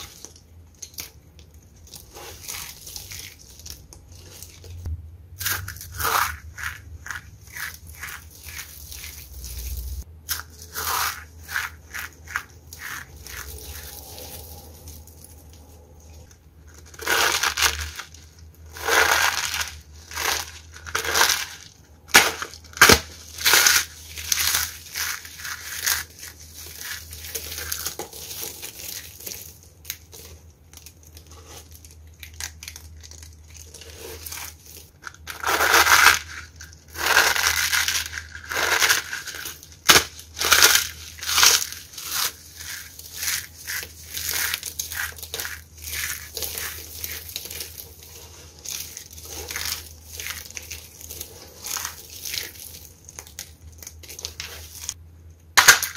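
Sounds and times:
hands crushing dry soap flakes: 0.0s - 55.9s.

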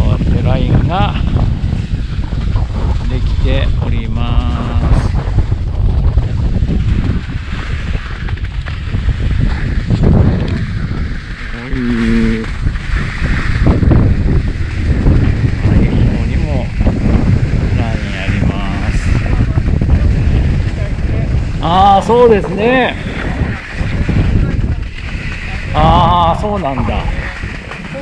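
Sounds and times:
wind buffeting microphone: 0.0s - 28.0s
skis scraping over snow: 0.1s - 28.0s.

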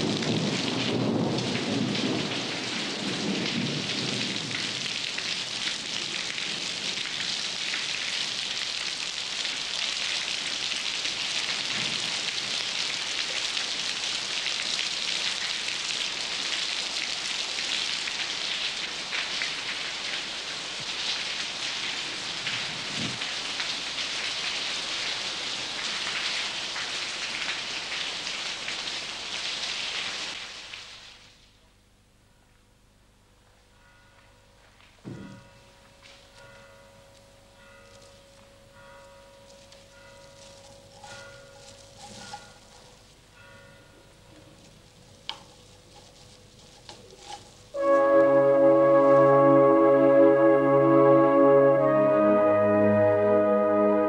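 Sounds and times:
low rumble of thunder: 0.0s - 7.2s
steady rain falling: 0.0s - 54.0s.

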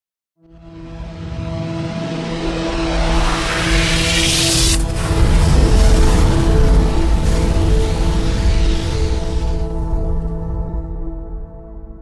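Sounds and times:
deep rumble: 0.9s - 11.8s
rising whoosh: 1.1s - 10.6s.

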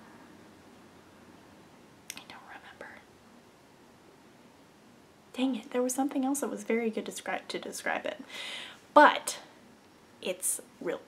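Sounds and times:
woman whispering: 2.1s - 3.0s.

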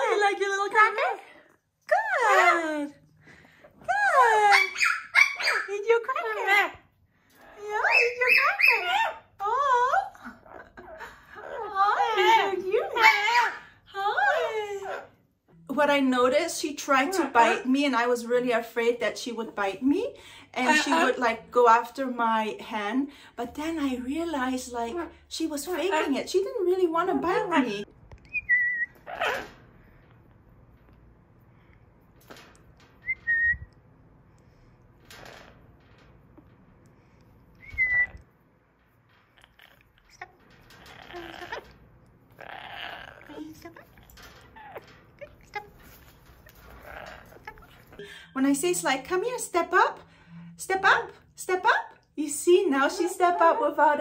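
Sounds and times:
parrot harsh raspy calls: 4.5s - 5.7s, 28.8s - 29.6s, 40.8s - 41.8s, 42.4s - 45.6s
parrot speech-like calls: 7.4s - 15.2s, 42.4s - 45.8s
parrot whistle: 28.3s - 29.3s, 33.0s - 33.7s, 37.6s - 38.2s.

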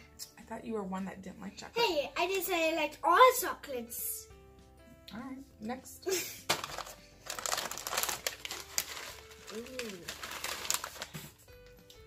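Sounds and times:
plastic crisp bag crinkling: 6.5s - 11.4s.

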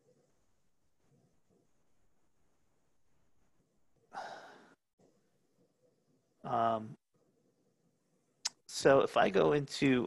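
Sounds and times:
faint room noise: 0.0s - 10.0s
person sighing: 4.1s - 4.8s.

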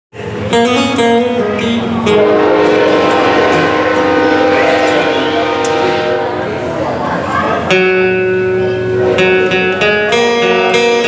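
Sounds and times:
acoustic guitar chord ringing: 0.5s - 11.0s.

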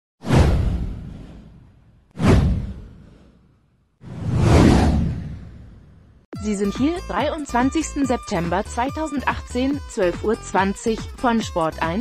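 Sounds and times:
whoosh sweeping down: 4.0s - 6.0s.

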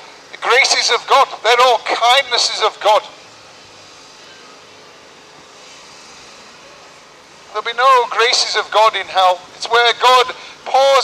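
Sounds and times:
shopping street hum: 0.0s - 11.0s.

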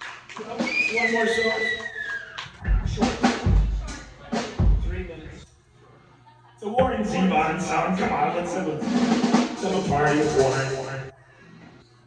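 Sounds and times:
kick drum thumps: 2.6s - 4.0s, 4.6s - 5.0s
snare and cymbal strikes: 2.6s - 5.1s, 8.8s - 11.1s.

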